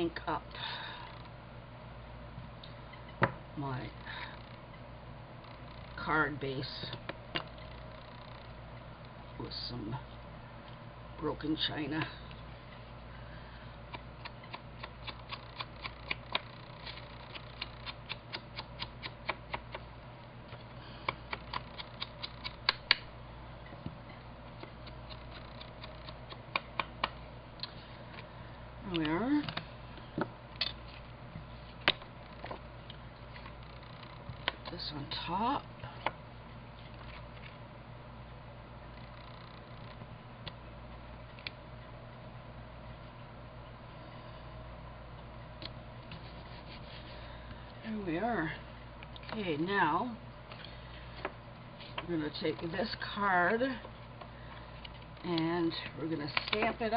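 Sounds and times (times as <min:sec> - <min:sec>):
steady low hum: 0:00.0 - 0:56.9
small paper ticks: 0:14.2 - 0:19.8, 0:21.3 - 0:23.0, 0:24.6 - 0:27.1.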